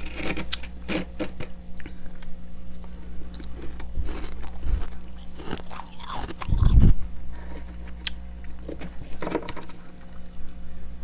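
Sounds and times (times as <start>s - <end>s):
frost crunching being chewed: 0.0s - 8.8s
steady low hum: 0.0s - 11.0s.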